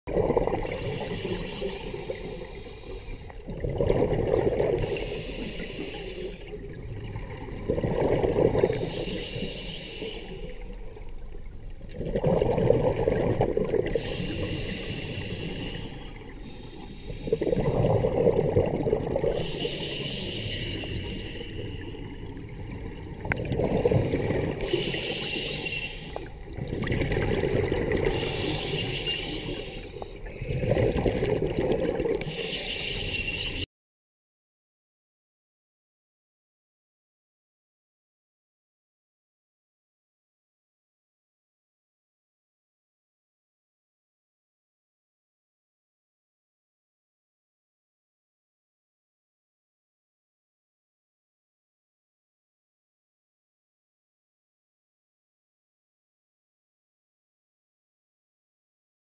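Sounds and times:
bubbles gurgling underwater: 0.1 - 1.3, 3.4 - 5.1, 6.5 - 9.0, 11.8 - 16.4, 17.2 - 19.9, 21.8 - 25.6, 26.5 - 29.6, 30.4 - 32.4
regulator breathing hiss: 0.7 - 3.3, 4.8 - 6.5, 8.8 - 10.6, 14.0 - 17.6, 19.3 - 22.1, 23.8 - 26.4, 28.1 - 30.5, 32.2 - 33.7.

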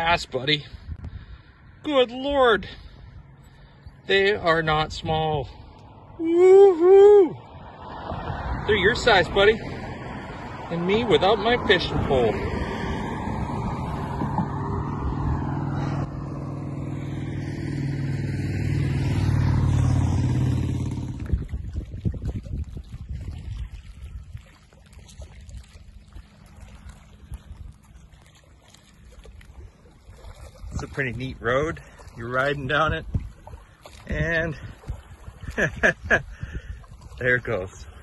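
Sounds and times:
outdoor noise: 0.0 - 21.9
vehicle engine passing: 0.0 - 22.0.

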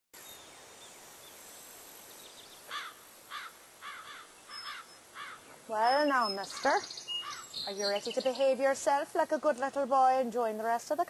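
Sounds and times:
faint outdoor background noise: 0.2 - 11.0
bird calling: 2.4 - 9.7.

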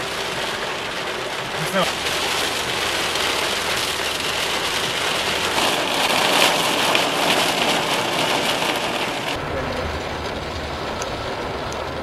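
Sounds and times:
heavy rain on car roof: 0.0 - 12.0.

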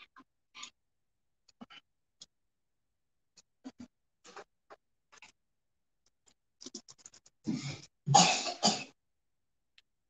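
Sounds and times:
person coughing: 7.5 - 9.0.

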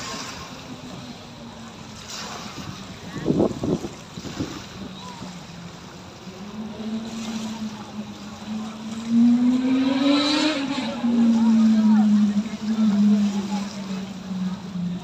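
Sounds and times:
engine running: 0.0 - 15.0.

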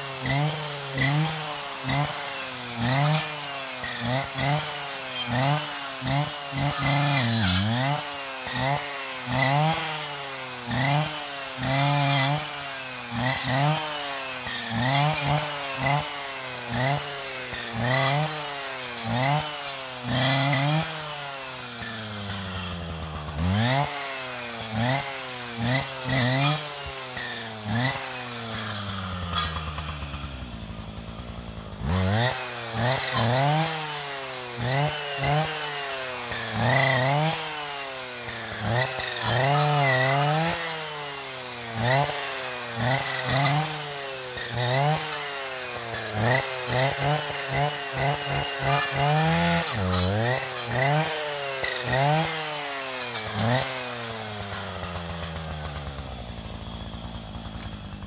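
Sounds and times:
brushcutter engine revving: 0.0 - 58.0
saw blade cutting brushwood: 0.0 - 58.0.

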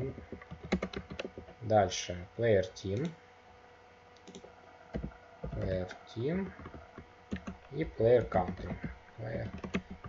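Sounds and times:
keyboard keystrokes: 0.2 - 1.5, 6.5 - 7.6, 8.2 - 10.0.

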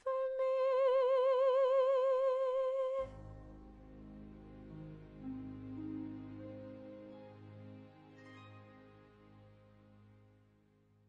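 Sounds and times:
backing music: 3.0 - 10.4.

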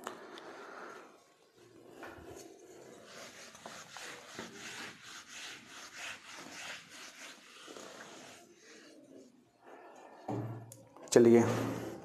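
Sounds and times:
duster rubbing on whiteboard: 2.4 - 9.4.

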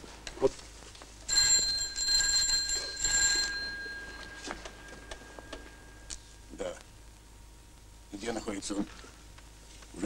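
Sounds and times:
telephone bell ringing: 1.3 - 6.1.

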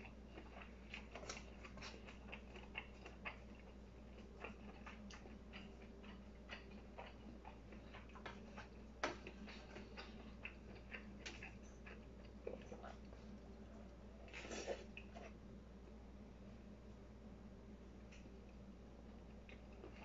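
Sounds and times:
chewing: 0.0 - 15.4, 19.2 - 20.0.

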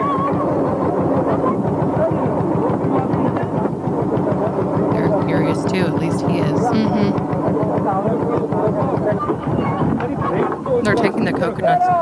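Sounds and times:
voices talking and calling: 0.0 - 12.0.

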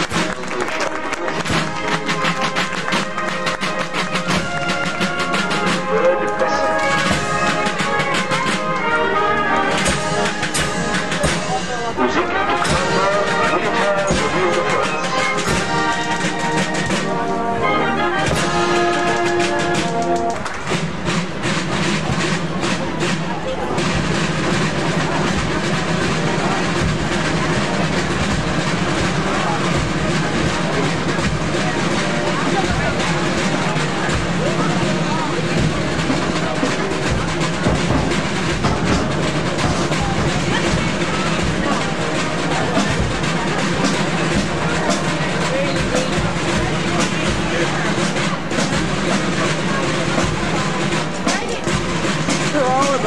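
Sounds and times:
brass instruments playing: 0.0 - 53.0
marching drum beat: 0.0 - 53.0.

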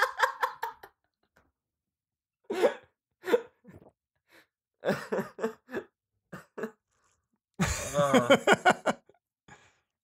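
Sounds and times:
person laughing: 7.6 - 9.1.

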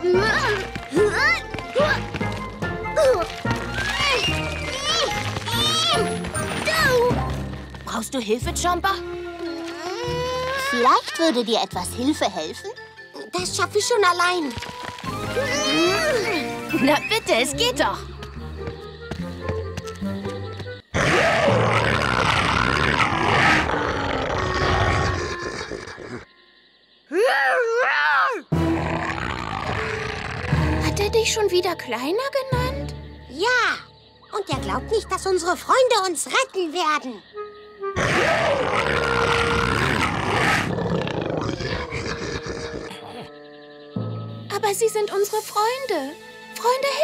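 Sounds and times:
cartoon dinosaur growling and roaring: 21.0 - 26.2, 28.6 - 30.9, 38.0 - 43.2.

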